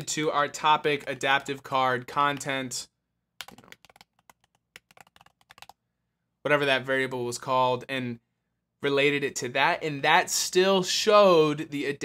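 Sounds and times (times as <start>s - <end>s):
typing on computer keyboard: 3.4s - 5.8s.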